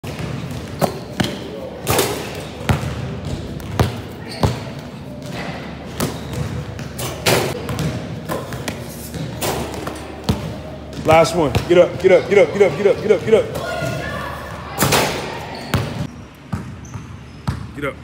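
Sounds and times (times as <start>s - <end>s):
basketball bouncing on wooden floor: 2.7s - 4.8s.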